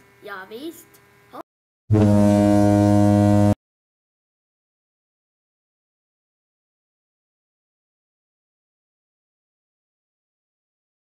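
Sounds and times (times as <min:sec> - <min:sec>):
loud steady low tone: 0:01.9 - 0:03.6.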